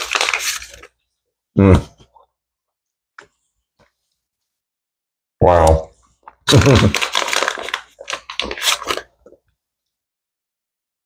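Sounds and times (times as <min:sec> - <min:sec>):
gum pouch crinkling: 0:00.0 - 0:00.9, 0:06.5 - 0:09.4.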